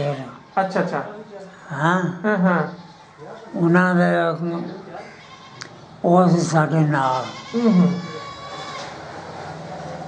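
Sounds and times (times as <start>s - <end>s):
elderly man's voice: 0.0s - 5.1s, 6.0s - 8.2s.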